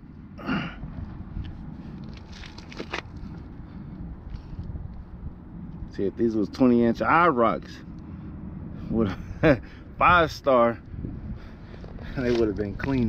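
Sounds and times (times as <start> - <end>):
low steady rumble: 0.0 - 13.0.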